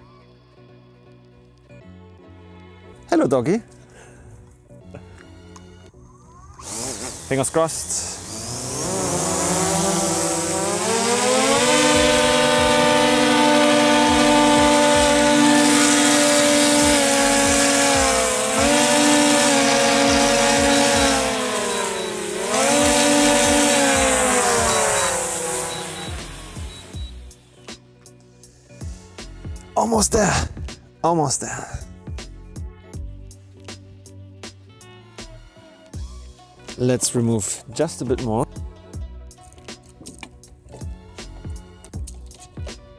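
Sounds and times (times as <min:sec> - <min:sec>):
drone propellers whining: 0:06.6 - 0:27.3.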